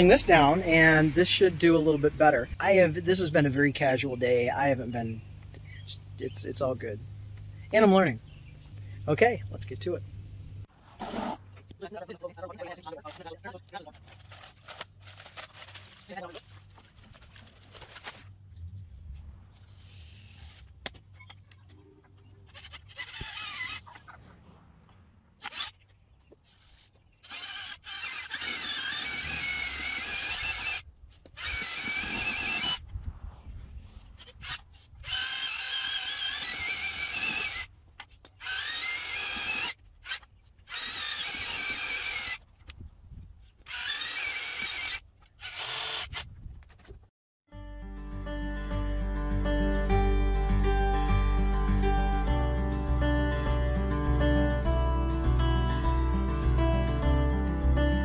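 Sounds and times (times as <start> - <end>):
drill motor whining: 22.6 - 23.9, 27.2 - 30.8, 31.4 - 32.8, 34.4 - 37.7, 38.4 - 42.4, 43.7 - 46.2.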